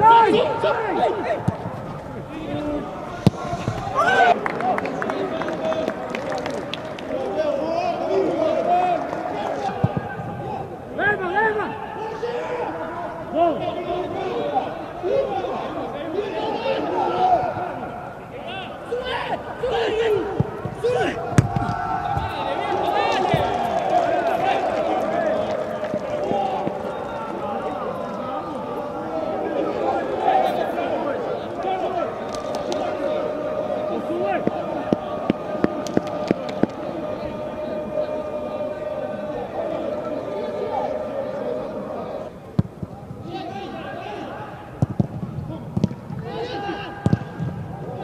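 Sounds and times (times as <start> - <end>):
footballers shouting: 0.0 - 48.0.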